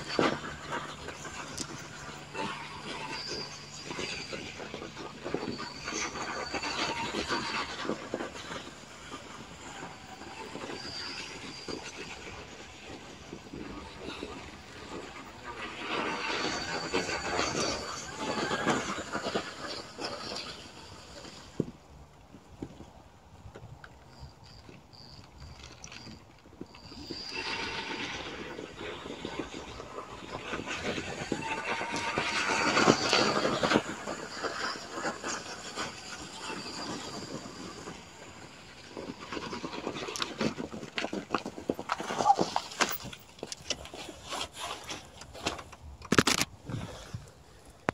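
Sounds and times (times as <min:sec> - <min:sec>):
steady background noise: 0:00.0 - 0:47.9
bicycle tyres crunching on snow: 0:24.2 - 0:47.9.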